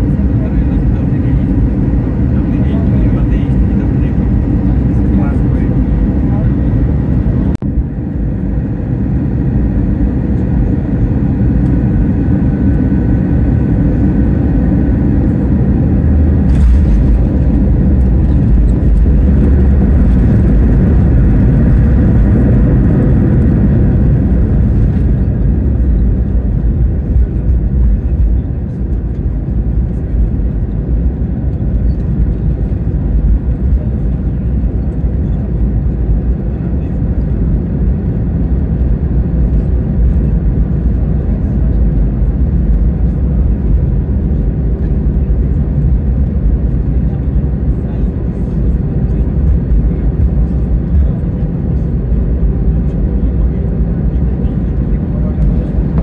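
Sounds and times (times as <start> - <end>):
engine and wheels low rumble: 0.0 - 56.0.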